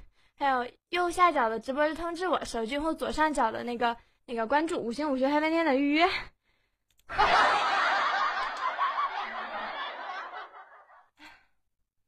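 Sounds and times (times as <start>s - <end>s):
burst of laughter: 7.1s - 11.1s.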